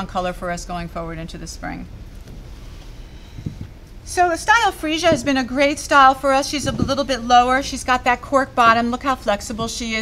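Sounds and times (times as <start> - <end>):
low background rumble: 0.0 - 10.0
soft low thump: 3.4 - 3.8, 5.0 - 5.5, 6.5 - 7.3.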